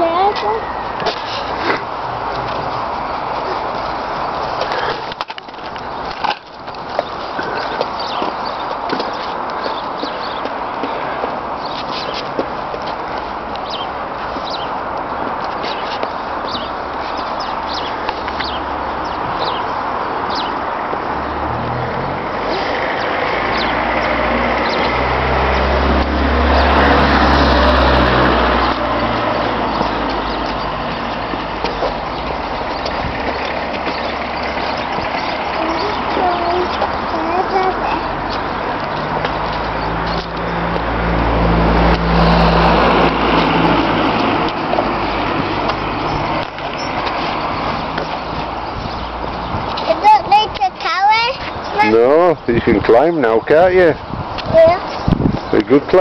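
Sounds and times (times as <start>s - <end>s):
road traffic noise: 0.0s - 56.0s
vehicle engine rumble passing: 0.0s - 56.0s.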